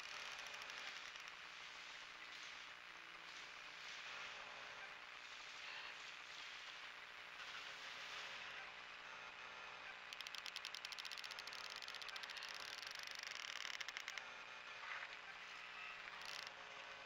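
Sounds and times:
rapid mechanical clicks: 0:00.0 - 0:02.5, 0:10.1 - 0:14.2, 0:15.8 - 0:16.5.

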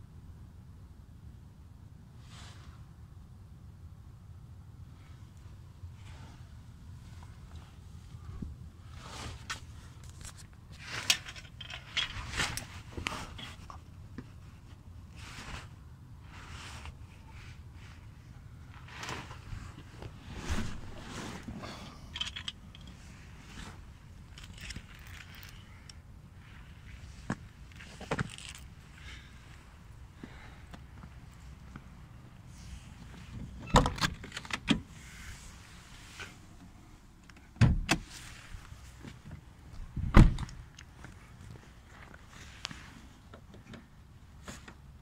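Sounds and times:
handling noise scratching and rustling: 0:07.0 - 0:18.1, 0:18.7 - 0:29.6
car door clunk: 0:37.6 - 0:38.1, 0:40.1 - 0:40.5.

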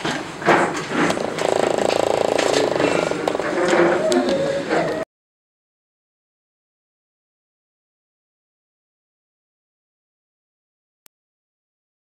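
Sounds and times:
steady buzz: 0:01.2 - 0:03.6.

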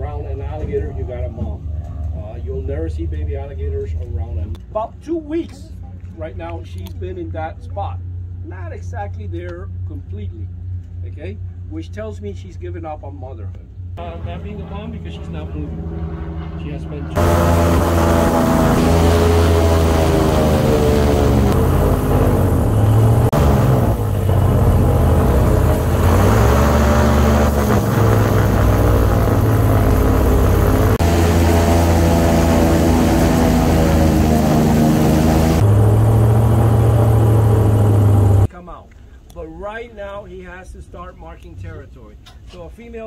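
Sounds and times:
airboat engine and propeller: 0:13.7 - 0:38.5.

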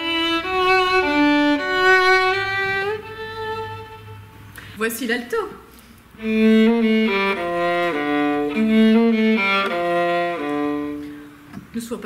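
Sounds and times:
bowed viola melody: 0:00.0 - 0:04.5, 0:06.2 - 0:11.5.

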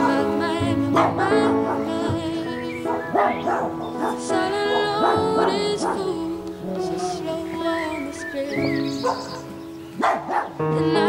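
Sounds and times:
background music: 0:00.0 - 0:11.0
puppy yapping: 0:02.9 - 0:06.0, 0:09.0 - 0:10.6.

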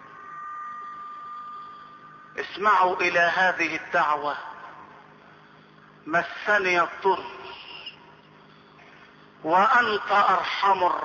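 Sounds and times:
faint high-pitched tone: 0:00.0 - 0:11.0
low room noise: 0:00.0 - 0:11.0.

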